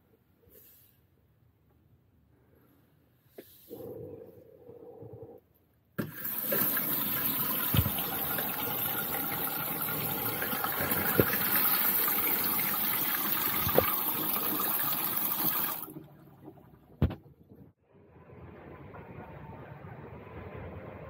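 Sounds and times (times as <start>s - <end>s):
short thumps: 17.0s - 17.7s.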